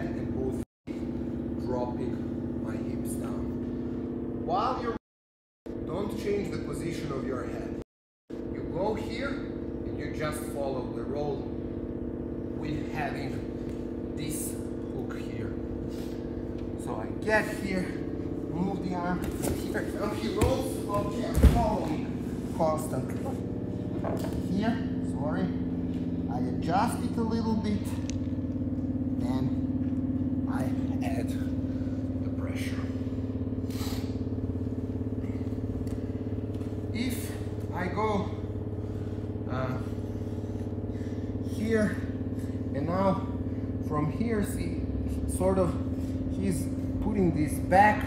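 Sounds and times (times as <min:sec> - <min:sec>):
steady low hum: 0:00.0 - 0:05.0, 0:05.7 - 0:48.0.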